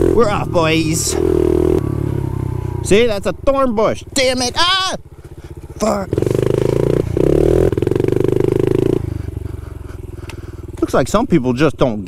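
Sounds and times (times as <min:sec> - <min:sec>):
motorbike engine revving: 0:00.0 - 0:12.0.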